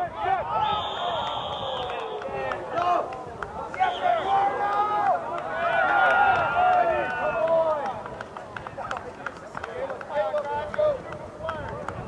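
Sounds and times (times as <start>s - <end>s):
players shouting: 0.0s - 8.1s.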